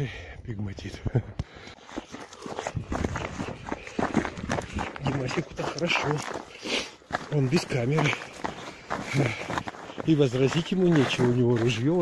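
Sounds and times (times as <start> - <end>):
footsteps on snowy rocky path: 1.4 - 12.0.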